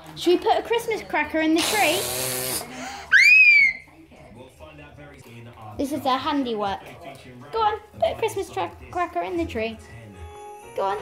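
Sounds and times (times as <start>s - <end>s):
child's high-pitched squeal: 3.1s - 3.8s.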